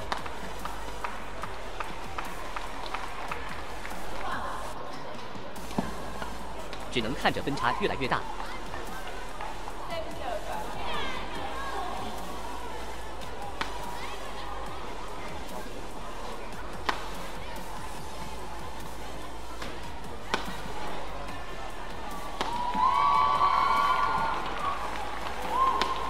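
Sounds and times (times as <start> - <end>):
rackets hitting shuttlecock: 22.4 - 22.7
loud sustained shout: 22.6 - 24.5.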